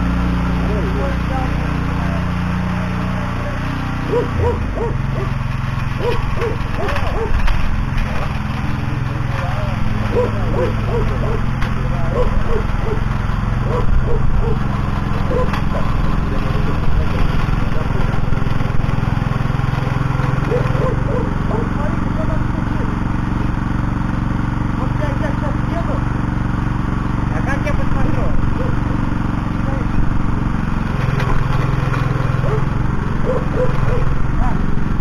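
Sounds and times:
tiller engine running: 0.0 - 35.0
tines churning soil: 0.0 - 35.0.

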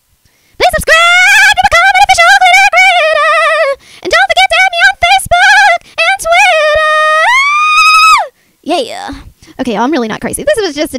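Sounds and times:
woman singing unaccompanied: 0.6 - 8.2.

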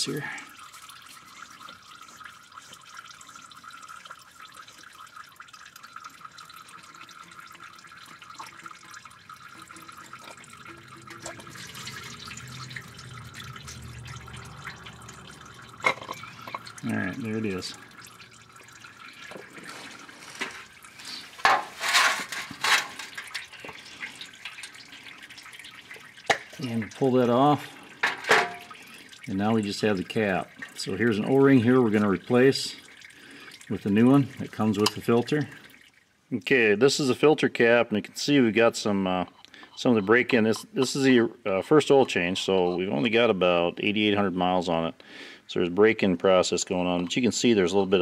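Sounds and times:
oil splashing into metal pan: 0.0 - 36.2
oil dripping: 0.0 - 48.0.

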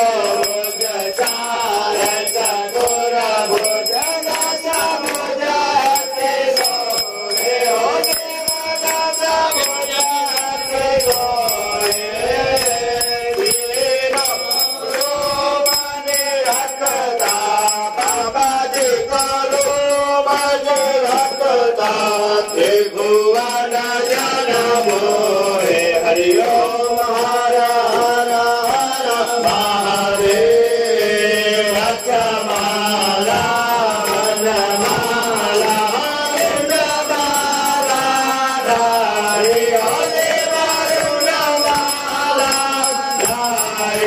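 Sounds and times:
voices chanting a hymn to music: 0.0 - 44.0.

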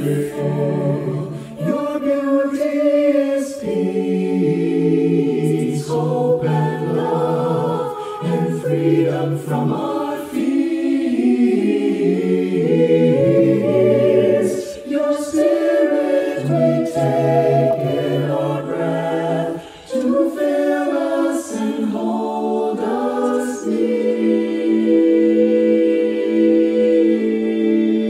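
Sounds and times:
a cappella choir singing: 0.0 - 28.0.

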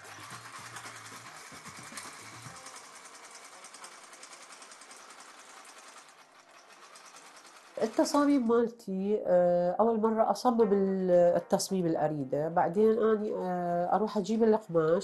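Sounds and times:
sewing machine stitching: 0.0 - 8.7.

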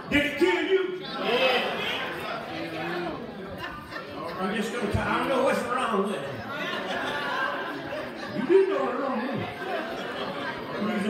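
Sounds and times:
man preaching over a microphone: 0.0 - 1.1
voices chattering: 0.0 - 11.0.

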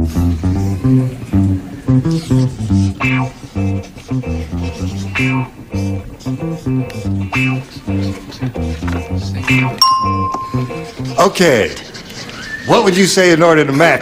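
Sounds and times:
game-show music bass and guitar: 0.0 - 11.2.

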